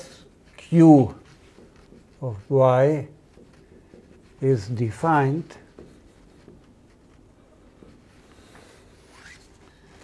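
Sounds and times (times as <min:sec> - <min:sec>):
chalk writing on blackboard: 0:00.0 - 0:10.0.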